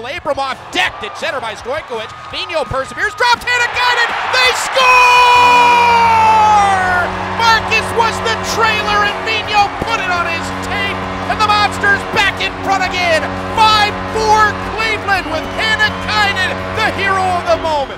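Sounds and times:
announcer calling score: 0:03.2 - 0:17.9
music with low sustained tone: 0:06.2 - 0:17.9.

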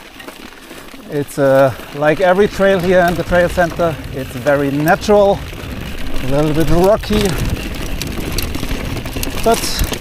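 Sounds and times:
bike clicks and rattles: 0:00.0 - 0:10.0
bike tyres on dirt and stones: 0:00.0 - 0:10.0
wind on microphone: 0:02.4 - 0:10.0.

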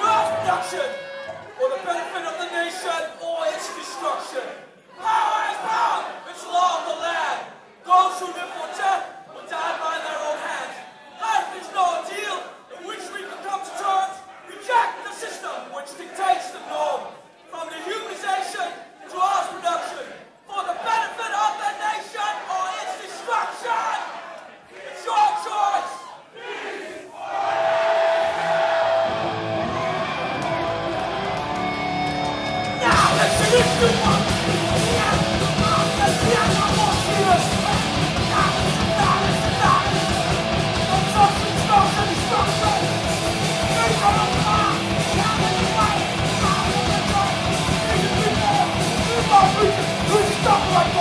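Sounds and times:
loud electric guitar: 0:00.0 - 0:01.6, 0:28.8 - 0:51.0
man shouting into microphone: 0:00.0 - 0:04.4, 0:32.8 - 0:51.0
crowd shouting: 0:00.0 - 0:12.1, 0:18.1 - 0:51.0
bass guitar: 0:28.9 - 0:51.0.

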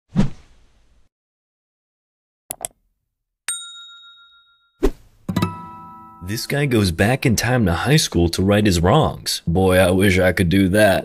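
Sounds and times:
bell ding: 0:03.5 - 0:06.6.

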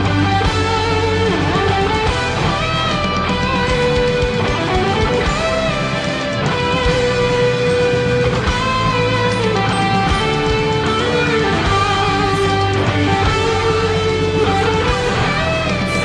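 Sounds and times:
electric guitar lead melody: 0:00.0 - 0:16.0
rock backing track with drums: 0:00.0 - 0:16.0.

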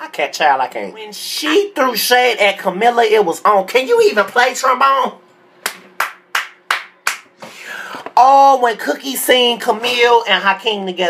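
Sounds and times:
hand clapping: 0:05.6 - 0:07.4.

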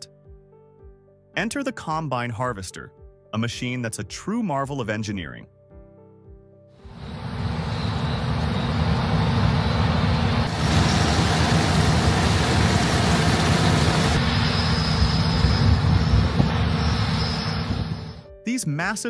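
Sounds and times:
combine harvesters rumbling: 0:06.9 - 0:18.2.

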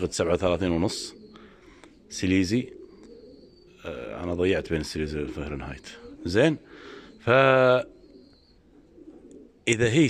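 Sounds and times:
pigeons cooing faintly: 0:00.0 - 0:10.0
man's drawn-out hesitation sound: 0:03.8 - 0:07.9.

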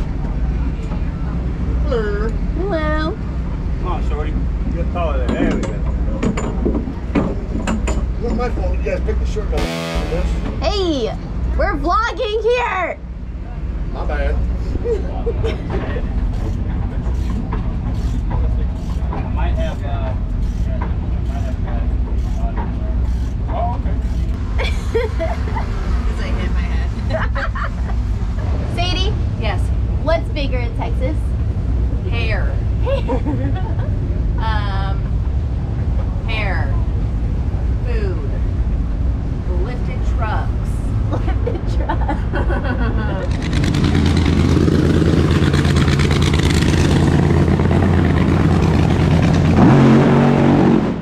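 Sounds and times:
steady low rumble: 0:00.0 - 0:49.6
people talking indistinctly: 0:08.2 - 0:17.3, 0:32.0 - 0:35.1, 0:37.8 - 0:38.6, 0:39.4 - 0:41.9.

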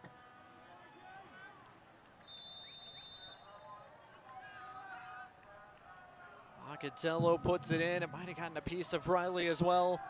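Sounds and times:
players and spectators shouting: 0:03.5 - 0:10.0.

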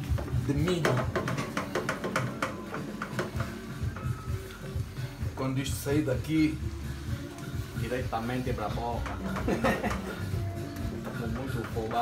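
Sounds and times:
wooden spoon knocking metal pot: 0:00.0 - 0:04.3, 0:08.7 - 0:12.0
background music: 0:00.0 - 0:12.0.

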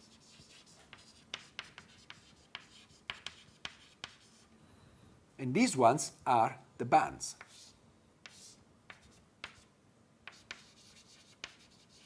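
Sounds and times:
chalk tapping and scratching: 0:00.0 - 0:04.5, 0:07.4 - 0:12.0.

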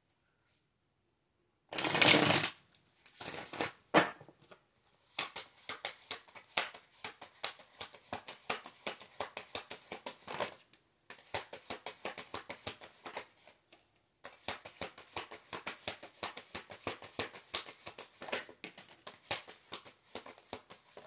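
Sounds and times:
cards rustling while shuffled: 0:01.8 - 0:03.8, 0:04.4 - 0:21.0
quick card slaps: 0:05.2 - 0:13.3, 0:14.2 - 0:21.0.

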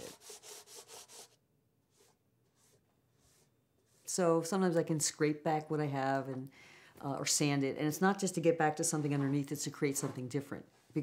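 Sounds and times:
sandpaper rubbing paint: 0:00.0 - 0:04.1.

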